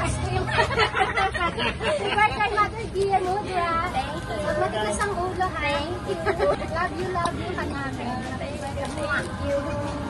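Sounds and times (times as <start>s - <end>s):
women talking and laughing: 0.0s - 10.0s.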